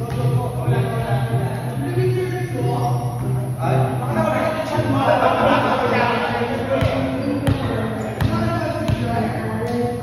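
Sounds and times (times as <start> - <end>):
voices in background: 0.0 - 10.0.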